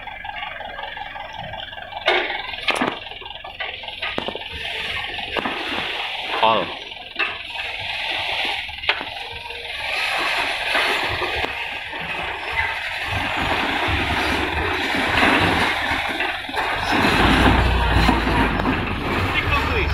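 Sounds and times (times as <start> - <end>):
truck engine: 0.0 - 19.9
soil and stones pouring out: 1.8 - 19.9.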